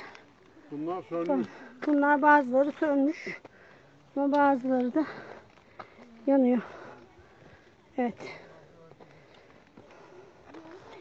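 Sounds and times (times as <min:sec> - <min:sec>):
footsteps on rock: 0:00.0 - 0:11.0.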